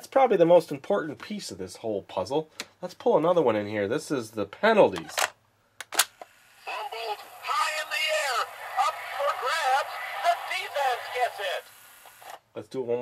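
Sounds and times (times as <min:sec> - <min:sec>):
faint hiss: 0:06.2 - 0:12.4
tinny recorded announcer voice: 0:06.7 - 0:11.7.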